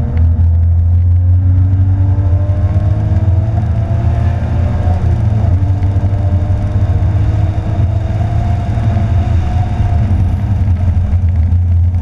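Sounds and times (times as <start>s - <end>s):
car engine revving: 0.0s - 12.0s
road and wind rumble: 0.0s - 12.0s.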